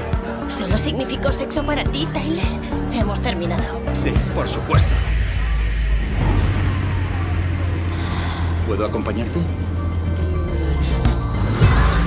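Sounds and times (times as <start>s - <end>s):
low bass drone: 3.8s - 12.0s
faint falling tone: 4.4s - 11.6s.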